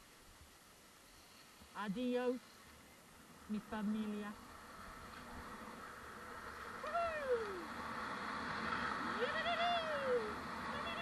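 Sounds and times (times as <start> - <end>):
hiss of sliding on snow: 0.0 - 3.3
person whooping: 6.8 - 7.8, 9.0 - 11.0.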